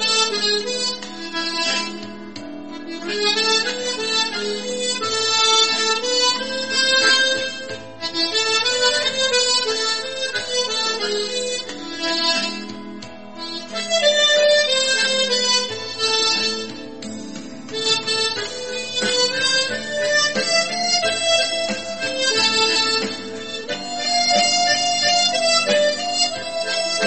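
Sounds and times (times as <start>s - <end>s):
harmonica playing slow melody: 0.0s - 27.0s.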